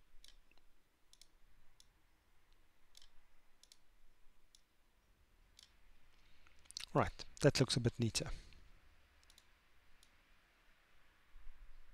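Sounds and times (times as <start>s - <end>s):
computer mouse clicks: 0.2s - 1.9s, 2.5s - 3.9s, 5.6s - 5.8s, 9.2s - 10.2s.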